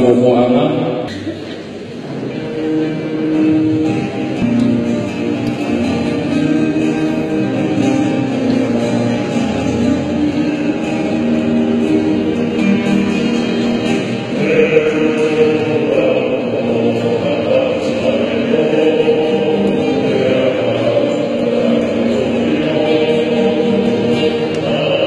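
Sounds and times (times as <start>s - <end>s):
strummed acoustic guitars: 1.1s - 25.0s
men's group singing in harmony: 5.3s - 25.0s
higher voice singing: 5.4s - 25.0s.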